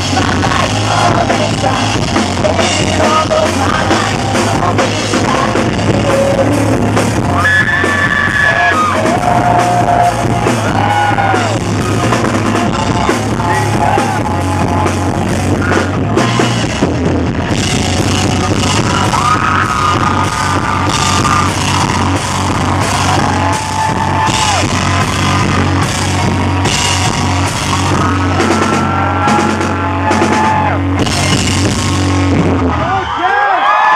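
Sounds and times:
live rock band playing: 0:00.0 - 0:33.2.

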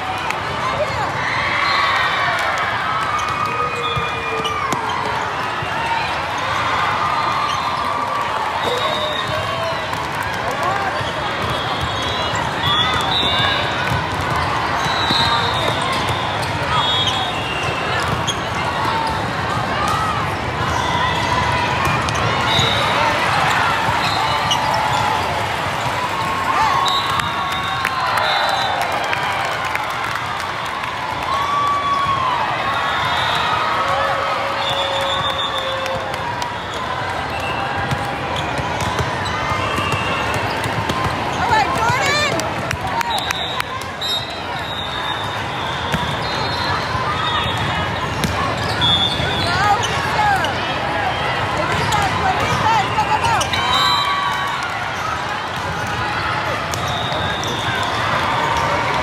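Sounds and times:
volleyballs hit and bouncing: 0:02.2 - 0:06.6, 0:07.5 - 0:16.8, 0:17.4 - 0:28.0, 0:35.3 - 0:44.6, 0:45.2 - 0:50.6, 0:54.4 - 0:59.0.

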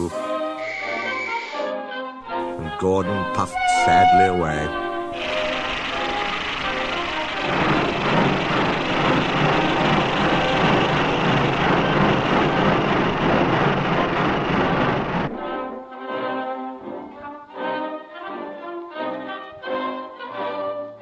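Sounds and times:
orchestral music with brass: 0:00.0 - 0:09.8, 0:15.3 - 0:21.0
quiet music: 0:01.8 - 0:10.8
rush of steam: 0:04.1 - 0:15.4.

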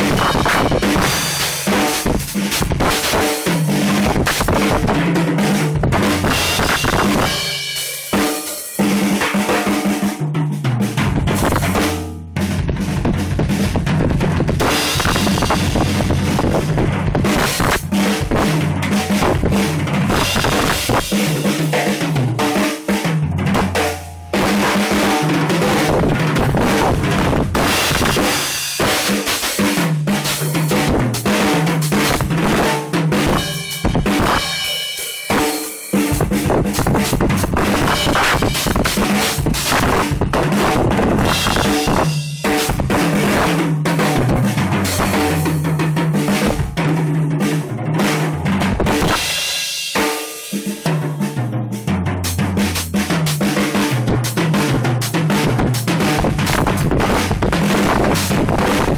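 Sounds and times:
fast drum kit solo: 0:00.0 - 0:58.9.

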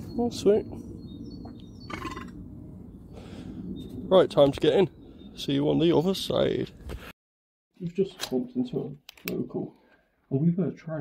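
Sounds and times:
faint birds chirping: 0:00.0 - 0:06.7.

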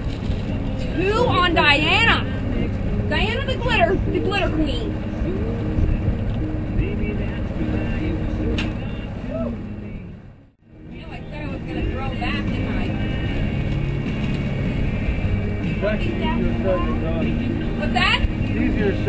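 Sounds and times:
outboard motors running: 0:00.0 - 0:19.0.

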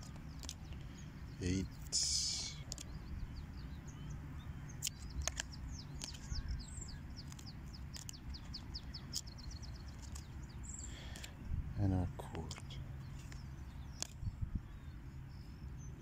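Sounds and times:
small bird chirping: 0:00.0 - 0:16.0
steady low hum: 0:00.0 - 0:16.0
cards clicking: 0:02.6 - 0:03.0, 0:04.8 - 0:06.4.

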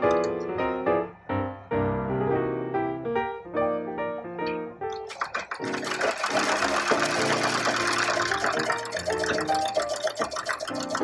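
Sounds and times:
background piano music: 0:00.0 - 0:11.0
sewing machine stitching: 0:05.1 - 0:11.0.

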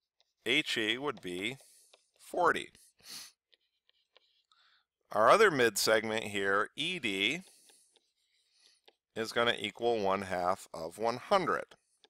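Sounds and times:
stylus ticking on tablet screen: 0:00.2 - 0:12.0
short breath: 0:03.0 - 0:03.4.

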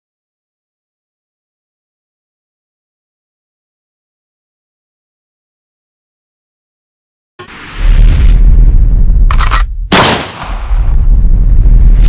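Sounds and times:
deep continuous rumble: 0:07.8 - 0:12.0.

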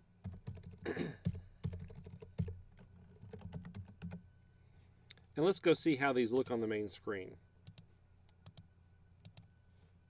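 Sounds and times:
computer keyboard typing: 0:00.2 - 0:04.2, 0:07.6 - 0:07.8, 0:08.4 - 0:09.5.

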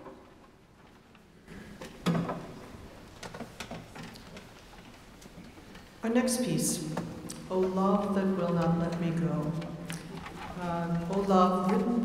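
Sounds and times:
small clicks and knocks: 0:01.8 - 0:05.9.

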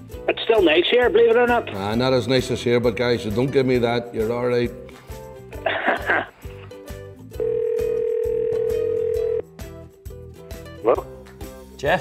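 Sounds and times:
background music: 0:00.0 - 0:12.0
telephone ringing tone: 0:07.4 - 0:09.4.

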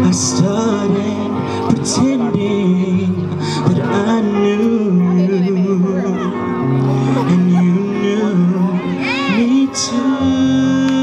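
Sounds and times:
instrumental backing of held chords: 0:00.0 - 0:11.0
man singing into microphone: 0:00.0 - 0:11.0.

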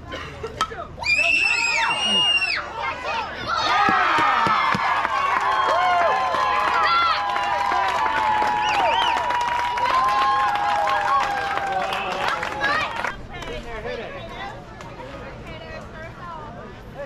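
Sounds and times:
crowd shouting and cheering: 0:01.0 - 0:13.2.

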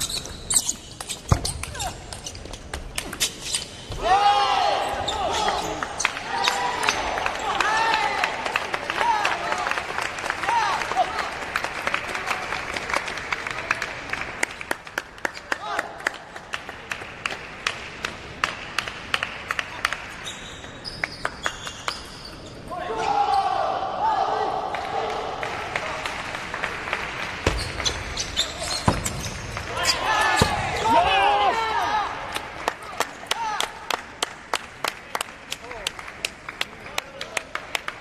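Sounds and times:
loud shouting: 0:04.0 - 0:09.7, 0:29.7 - 0:32.2.

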